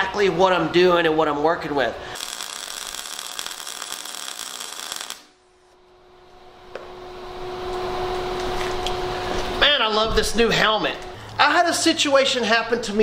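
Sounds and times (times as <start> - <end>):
welding arc crackling: 2.1 - 5.4.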